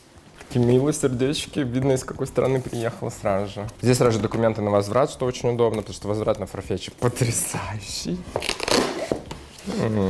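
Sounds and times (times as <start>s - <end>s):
person speaking: 0.4s - 8.5s, 9.6s - 10.0s.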